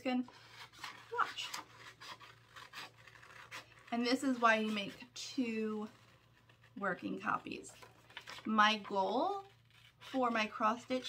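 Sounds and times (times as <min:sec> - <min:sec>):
scissors snipping paper: 0:00.3 - 0:11.0.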